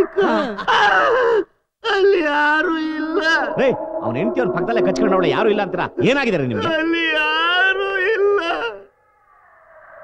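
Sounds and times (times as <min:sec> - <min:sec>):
person making wavering vocal sounds: 0:00.0 - 0:00.7.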